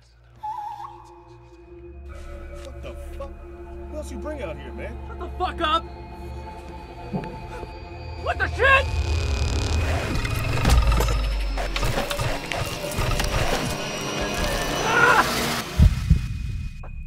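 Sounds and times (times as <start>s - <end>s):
dramatic film score: 0.0s - 17.0s
creature cries and snarls: 14.4s - 15.5s.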